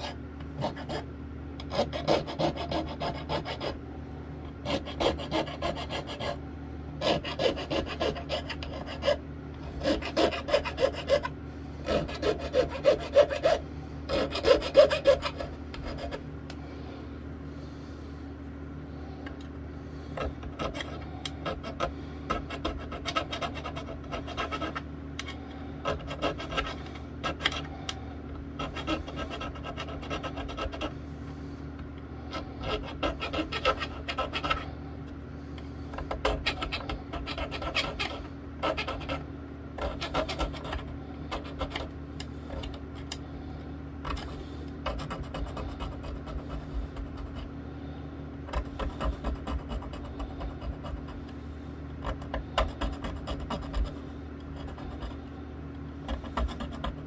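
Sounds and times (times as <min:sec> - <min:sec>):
metal file rasping on frets: 0:00.0 - 0:01.0, 0:01.6 - 0:03.8, 0:04.6 - 0:06.4, 0:07.0 - 0:16.2, 0:20.2 - 0:27.7, 0:28.6 - 0:31.0, 0:32.2 - 0:34.7, 0:36.1 - 0:39.2, 0:39.8 - 0:41.9, 0:44.9 - 0:47.5, 0:48.6 - 0:51.2, 0:52.0 - 0:55.2, 0:56.0 - 0:57.0.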